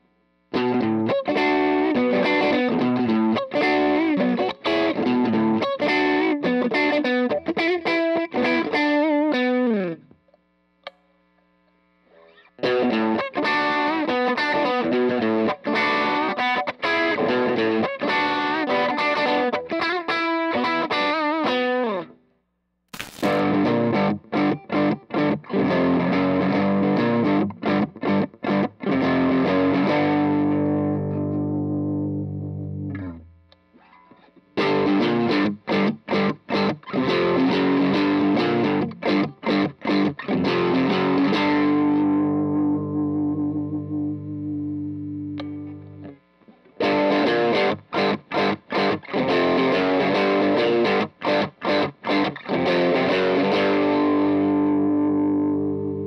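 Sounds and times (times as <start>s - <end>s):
overdriven electric guitar: 0.0s - 11.0s, 12.1s - 22.2s, 22.9s - 56.0s
sharp click: 10.3s - 11.1s, 22.9s - 23.4s.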